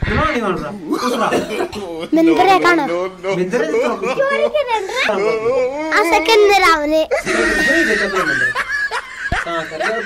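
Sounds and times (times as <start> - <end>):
boy laughing loudly: 7.1 - 10.0.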